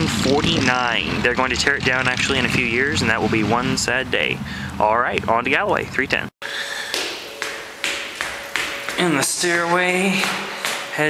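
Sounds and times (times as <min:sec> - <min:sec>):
footsteps on hard stairs: 0:06.6 - 0:11.0.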